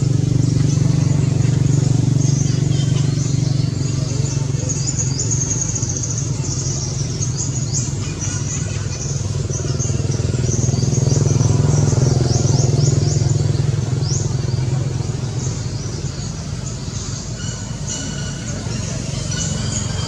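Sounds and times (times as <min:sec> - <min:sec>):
birds chirping: 0:00.0 - 0:20.0
vehicle engine droning: 0:00.0 - 0:20.0.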